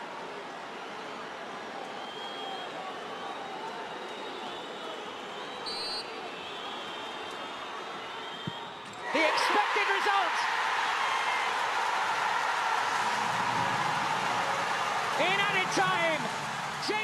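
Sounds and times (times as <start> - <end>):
stadium crowd voices: 0.0 - 17.0
crowd whistles: 0.7 - 17.0
shrill referee's whistle: 2.0 - 2.8, 3.9 - 7.3.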